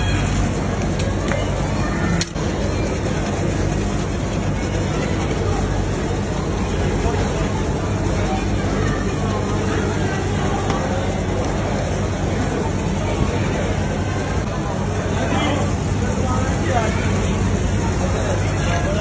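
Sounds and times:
low machine hum: 0.0s - 19.0s.

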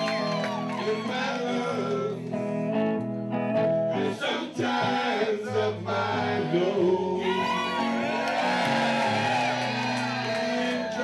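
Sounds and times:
audience cheering and whooping: 0.0s - 1.6s, 6.9s - 11.0s
person singing: 0.0s - 2.4s, 4.0s - 11.0s
live band with electric guitar: 0.0s - 4.2s, 4.8s - 11.0s.

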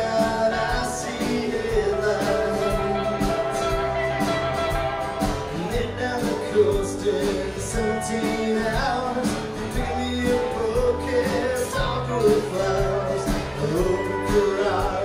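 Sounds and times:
live country-rock band playing: 0.0s - 15.0s.

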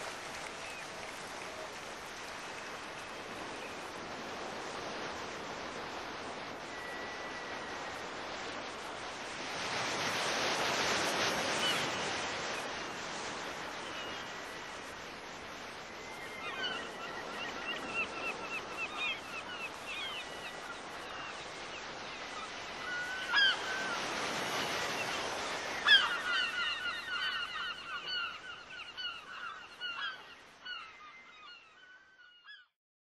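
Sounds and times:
sea surf washing: 0.0s - 30.2s
seagulls calling: 16.1s - 32.7s.

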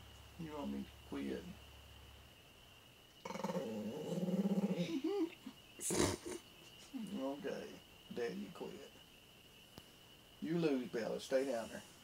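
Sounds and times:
dog growling: 3.2s - 6.4s.

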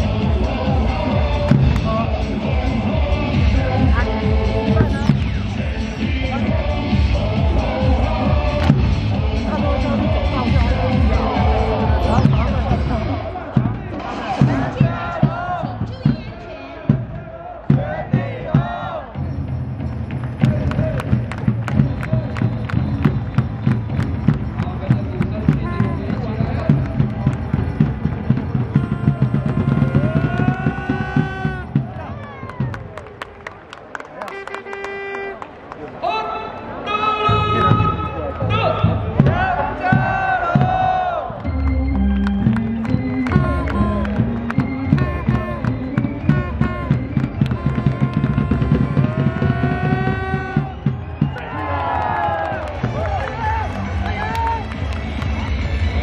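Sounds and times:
voices chanting along: 0.0s - 19.2s, 27.6s - 32.7s, 38.6s - 51.4s
cheer music with driving beat: 0.0s - 33.3s, 37.3s - 56.0s.

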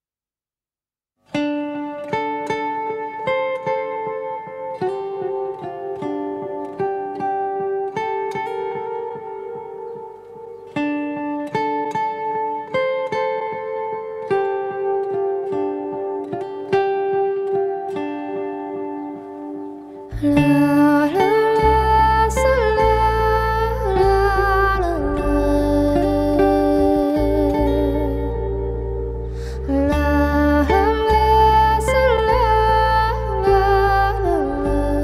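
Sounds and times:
acoustic guitar picking arpeggio: 1.3s - 35.0s.

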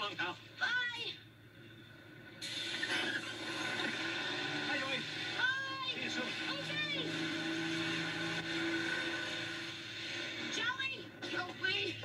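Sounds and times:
bus engine droning: 2.6s - 11.9s.

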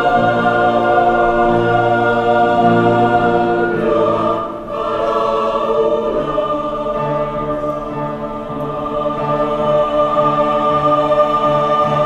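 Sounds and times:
mixed choir singing chords: 0.0s - 12.0s.

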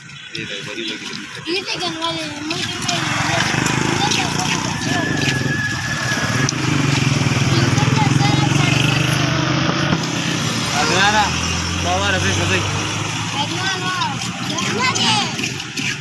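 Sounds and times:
vehicle engine humming: 0.0s - 16.0s
people's voices: 0.3s - 16.0s.

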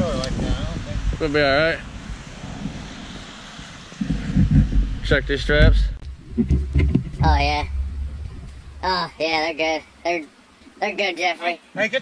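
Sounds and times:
wind noise on the microphone: 0.0s - 10.0s.

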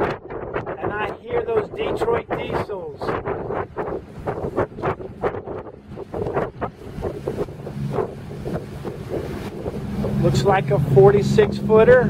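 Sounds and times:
bow wake rushing: 0.0s - 12.0s
wind gusts on microphone: 0.0s - 12.0s
boat diesel engines droning: 5.0s - 12.0s.

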